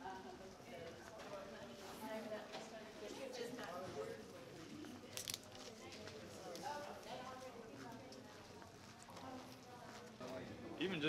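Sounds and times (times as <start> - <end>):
people talking: 0.0 - 10.1.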